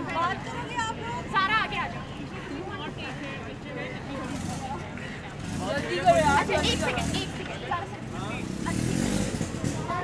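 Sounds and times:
scattered voices: 0.0 - 10.0.

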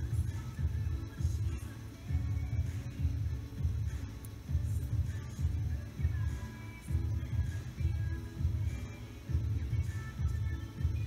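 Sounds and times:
music with deep bass notes: 0.0 - 11.0.

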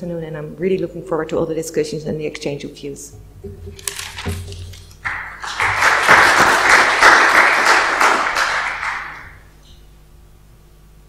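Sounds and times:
audience applauding: 3.8 - 9.5.

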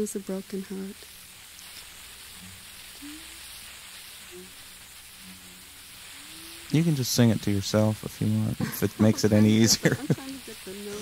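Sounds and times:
tape hiss: 0.0 - 11.0
woman humming soft notes: 3.0 - 3.5, 4.3 - 7.0.

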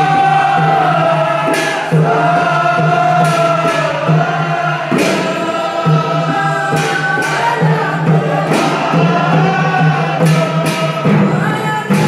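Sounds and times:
men chanting together: 0.0 - 12.0
sharp beats: 0.0 - 12.0.

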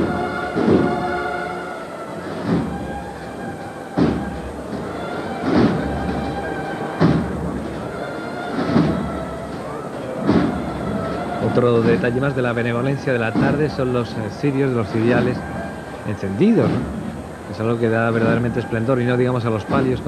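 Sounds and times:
band playing slow march: 0.0 - 20.0
heavy drum strokes: 0.0 - 20.0.

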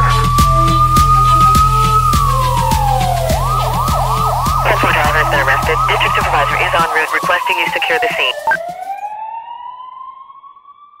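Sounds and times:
police siren wail: 0.1 - 8.5.

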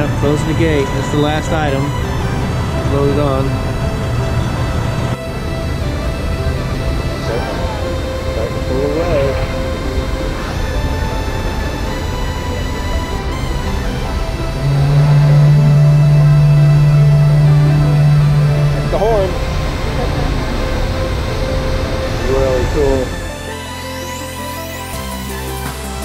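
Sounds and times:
ship's horn blast: 0.0 - 25.6
background music: 0.0 - 26.0.

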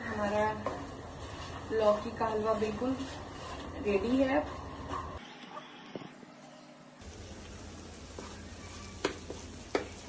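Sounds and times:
wooden spatula stirring thick food: 0.0 - 5.2, 7.0 - 10.0
spatula knocking against pan: 9.0 - 10.0.

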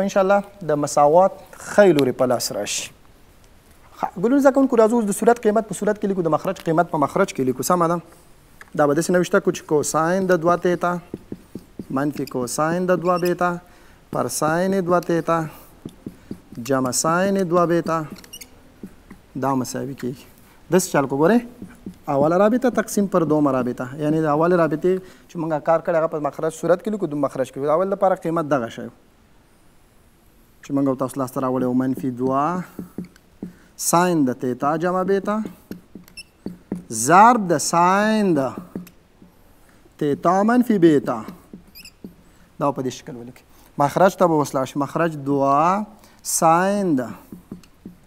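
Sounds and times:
man speaking: 0.0 - 3.0, 3.9 - 8.1, 8.7 - 11.2, 11.8 - 15.7, 16.5 - 18.3, 19.3 - 29.0, 30.6 - 32.9, 33.8 - 35.6, 36.9 - 38.8, 40.0 - 41.4, 42.6 - 47.3
marker squeaking on whiteboard: 8.5 - 23.8, 30.7 - 33.6, 34.7 - 39.4, 40.2 - 42.4, 46.6 - 48.0
whiteboard marker squeak: 9.9 - 19.3, 35.4 - 36.9, 41.2 - 42.3.

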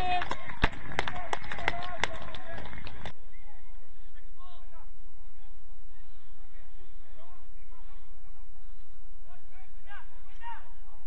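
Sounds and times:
distant players shouting: 0.0 - 3.6
steady low hum: 2.7 - 11.0.

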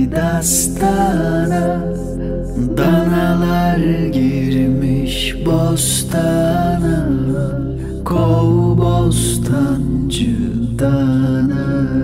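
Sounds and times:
man singing a lullaby: 0.0 - 12.0.

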